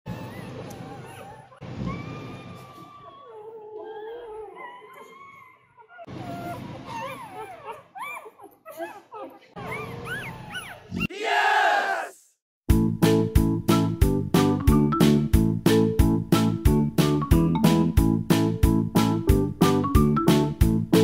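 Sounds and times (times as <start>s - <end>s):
puppy long squeal: 0.1s - 8.9s
puppies whining and squeaking: 0.1s - 11.1s.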